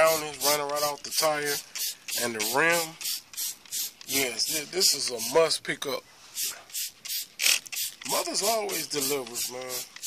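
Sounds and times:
spray bottle hissing sprays: 0.0 - 5.6, 6.3 - 10.0.

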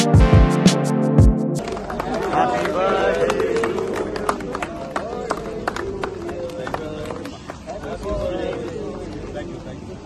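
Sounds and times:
crowd clapping to a beat: 0.0 - 9.4.

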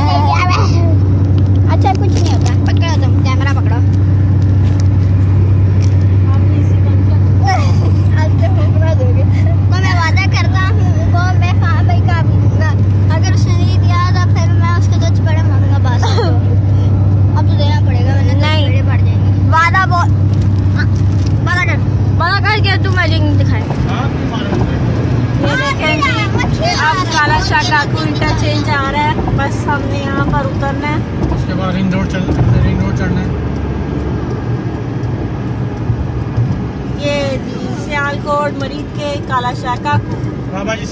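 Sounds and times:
car engine and road drone: 0.0 - 40.9.

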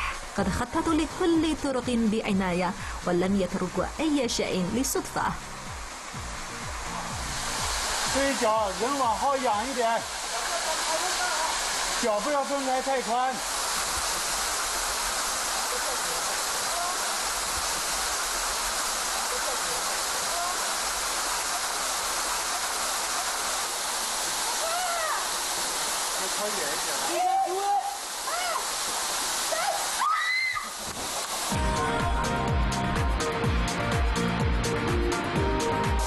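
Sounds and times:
waterfall rushing: 2.7 - 33.3
voice crying out: 16.6 - 17.3, 24.4 - 25.4, 27.1 - 28.8, 29.5 - 30.8.

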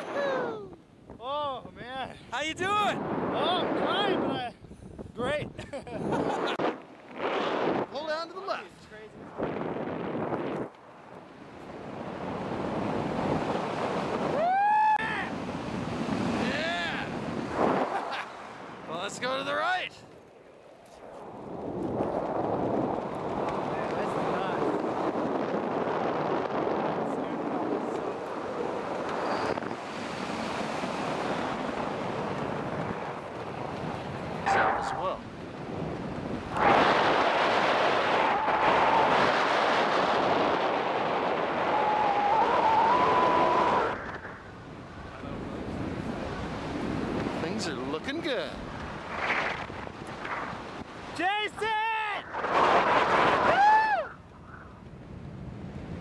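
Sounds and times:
wind rushing over microphone: 0.0 - 56.0.

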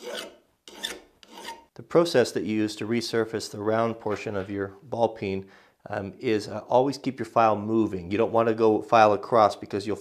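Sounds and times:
file rasping on steel: 0.0 - 1.7.

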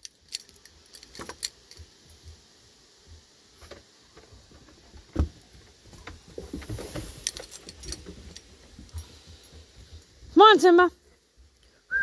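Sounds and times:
metallic clicks and jingles: 0.0 - 2.2, 7.1 - 10.1.

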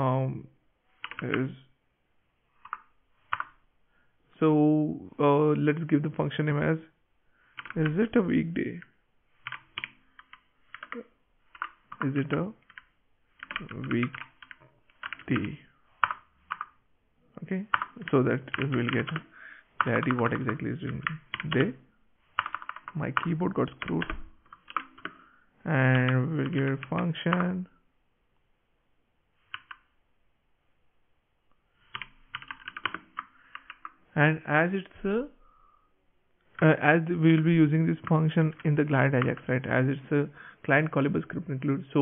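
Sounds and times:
typing on computer keyboard: 1.0 - 1.4, 2.6 - 3.6, 7.5 - 8.1, 8.7 - 16.8, 17.7 - 21.7, 22.4 - 25.2, 26.0 - 27.5, 29.5 - 29.9, 31.9 - 34.0.

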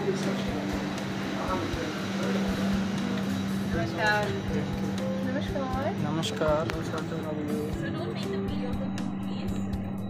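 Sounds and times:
airliner cabin hum: 0.0 - 6.1.

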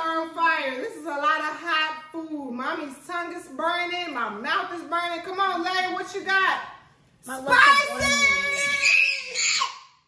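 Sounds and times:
excited high-pitched squeal: 8.1 - 9.8.

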